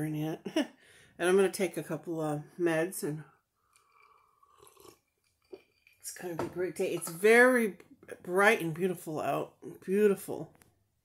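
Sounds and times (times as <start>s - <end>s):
sipping and swallowing: 3.6s - 6.0s.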